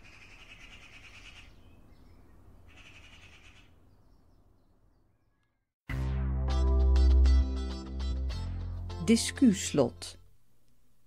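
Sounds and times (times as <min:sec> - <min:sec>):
birds trilling and chirping: 0:00.0 - 0:05.6
music: 0:05.9 - 0:10.3.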